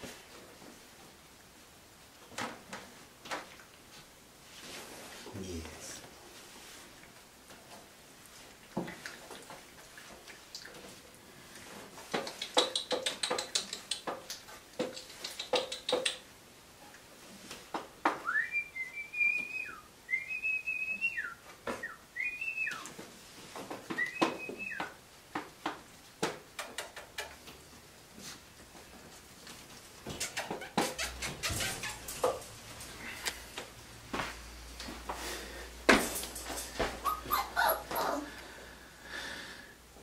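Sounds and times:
puppies tapping and scuffling: 6.0s - 16.3s, 22.6s - 38.4s
puppy whining: 37.0s - 38.4s.

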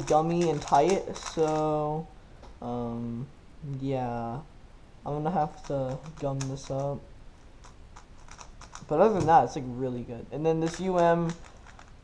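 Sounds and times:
plastic cube layers clicking: 0.0s - 1.8s, 5.5s - 7.0s, 7.6s - 9.4s, 10.6s - 12.0s.

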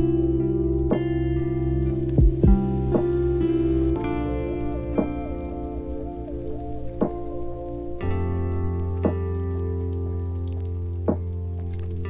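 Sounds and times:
instrumental music with sustained chords: 0.0s - 12.0s.

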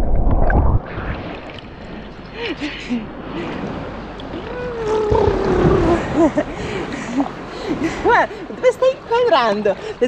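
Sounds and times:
water sloshing and gurgling: 0.0s - 10.0s.

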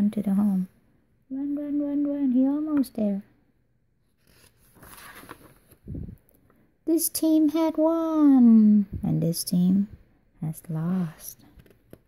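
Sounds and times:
paper page rustling: 4.2s - 5.9s.

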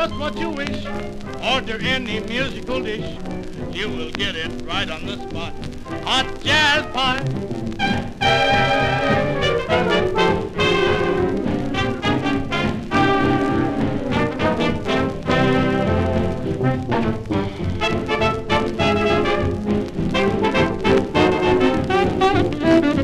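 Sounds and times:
big band dance music with horns: 0.0s - 23.0s.

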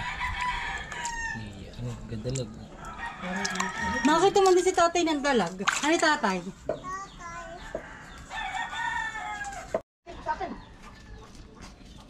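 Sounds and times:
rooster crowing: 0.0s - 1.5s, 2.8s - 4.4s, 7.8s - 9.8s.

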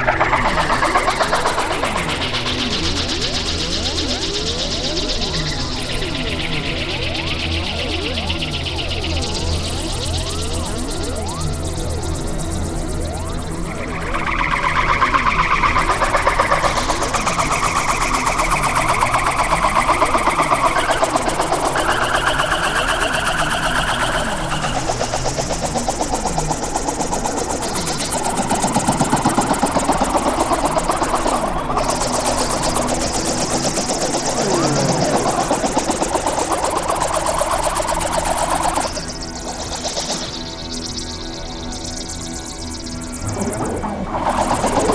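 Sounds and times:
experimental electronic noise music: 5.2s - 44.9s.

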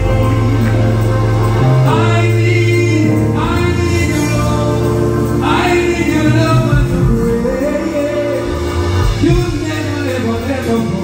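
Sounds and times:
choir voices: 0.0s - 11.0s
man singing into microphone: 0.0s - 11.0s
sustained instrumental accompaniment: 0.0s - 11.0s.

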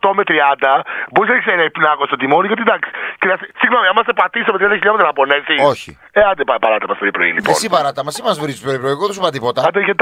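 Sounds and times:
radio hosts talking: 0.0s - 10.0s.

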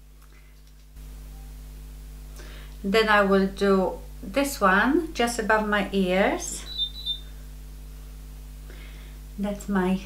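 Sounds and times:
steady low hum: 0.0s - 10.0s
high double beep: 6.6s - 7.2s.

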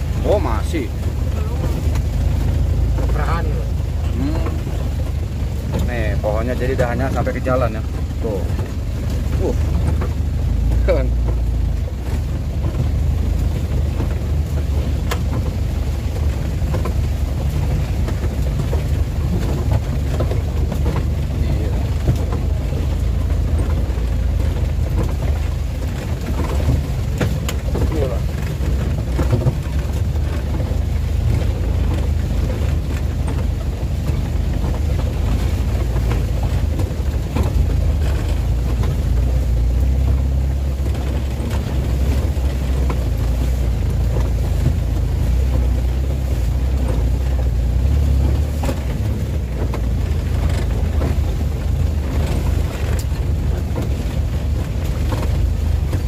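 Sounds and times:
diesel engine running: 0.0s - 56.0s
vehicle body knocking and rattling: 0.0s - 56.0s.

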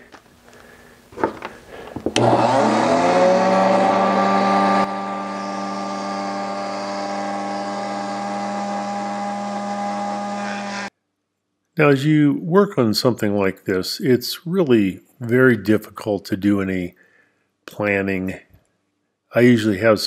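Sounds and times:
electric carving knife whining: 2.0s - 10.9s.

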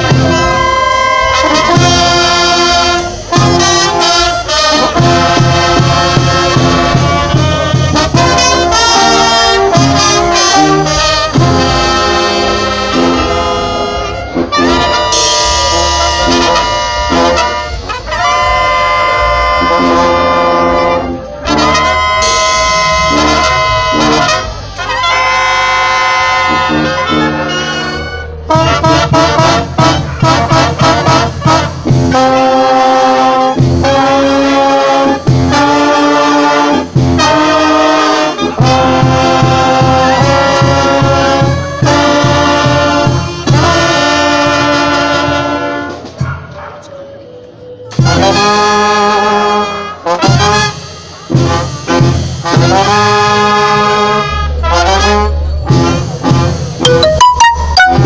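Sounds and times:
brass band playing: 0.0s - 46.8s, 47.9s - 58.0s.

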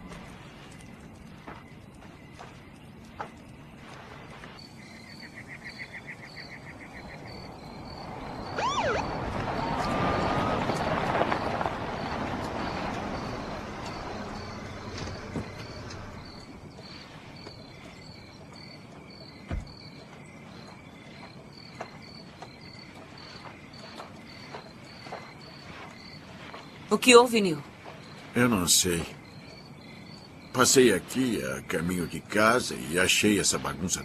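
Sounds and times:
crickets chirping: 0.0s - 34.0s
soft thumps: 19.4s - 19.8s.

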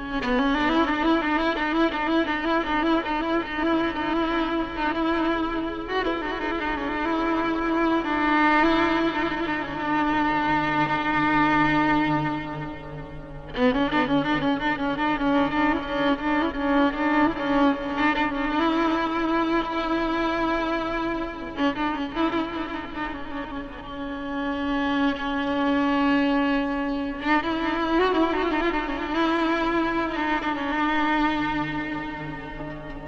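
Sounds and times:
solo violin playing: 0.0s - 33.0s.

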